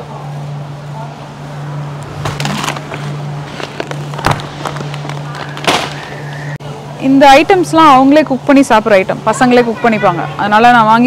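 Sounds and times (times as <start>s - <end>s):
steady low hum: 0.0s - 11.0s
plastic bag rustling: 2.3s - 6.1s.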